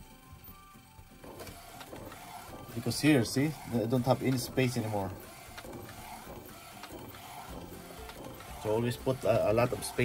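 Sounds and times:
printer running: 0.0 - 10.0.

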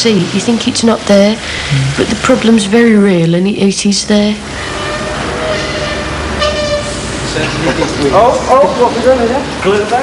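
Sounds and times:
horn toot: 4.6 - 7.2.

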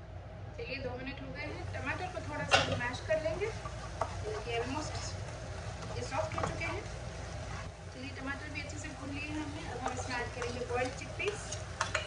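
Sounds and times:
steady low hum: 0.0 - 12.0
people talking: 0.6 - 3.6, 4.2 - 5.2, 5.9 - 6.9, 8.0 - 11.6.

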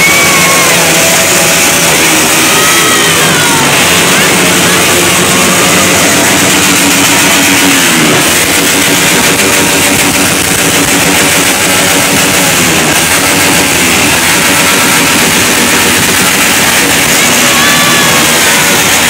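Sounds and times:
motorcycles and scooters revving: 0.0 - 19.0.

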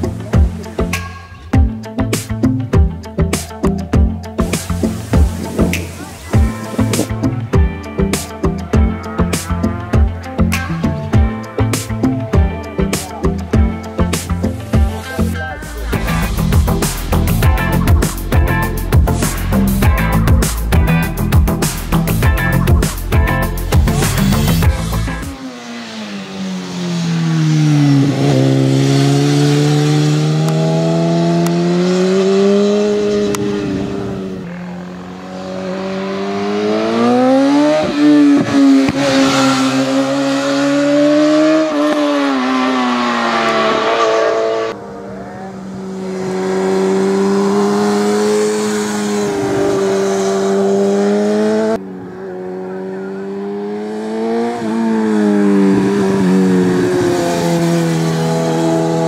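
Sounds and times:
motorcycle engine revving: 23.6 - 59.0.

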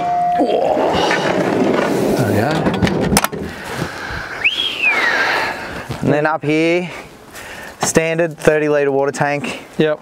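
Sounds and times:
swooping whistled note: 4.3 - 5.3.

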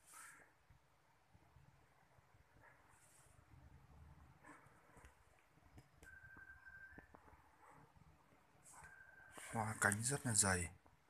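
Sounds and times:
faint steady high tone: 6.0 - 7.8, 8.6 - 10.5.

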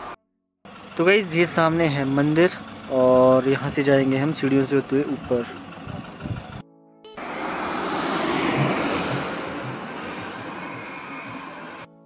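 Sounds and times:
vehicle passing by: 7.2 - 12.0.

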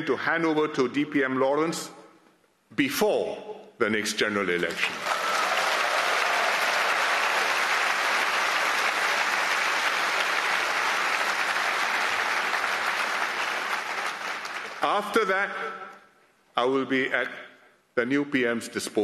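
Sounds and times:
audience applauding: 4.9 - 15.1.

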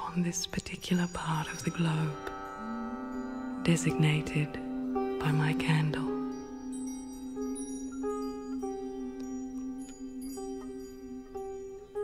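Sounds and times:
faint sustained music tones: 0.0 - 12.0.

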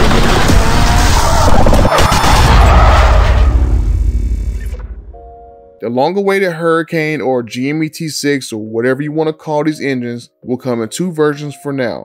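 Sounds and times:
deep boom rumble: 0.0 - 5.3.

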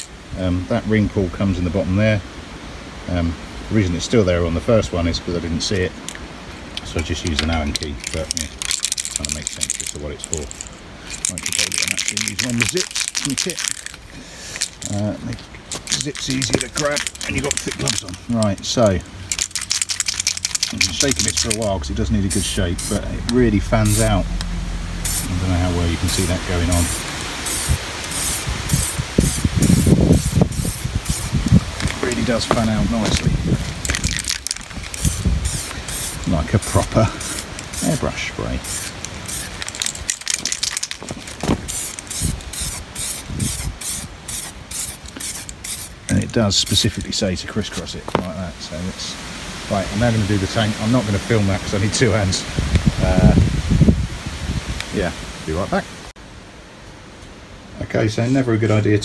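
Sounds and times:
steady background hiss: 0.0 - 59.0
man speaking: 6.8 - 10.6, 11.2 - 13.8, 14.8 - 19.2, 20.6 - 24.3, 25.2 - 27.0, 31.9 - 33.6, 35.8 - 39.0, 46.1 - 53.4, 57.8 - 59.0
aerosol can spraying bursts: 22.3 - 23.0, 25.0 - 25.4, 26.0 - 31.6, 34.0 - 46.0
wind buffeting microphone: 25.8 - 40.1, 41.0 - 44.2, 51.8 - 55.2.

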